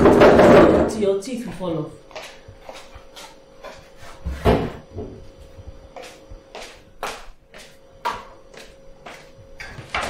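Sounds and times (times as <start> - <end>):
knock on kitchen counter: 0.0 - 0.9, 4.3 - 5.2
footsteps on hard floor: 1.4 - 10.0.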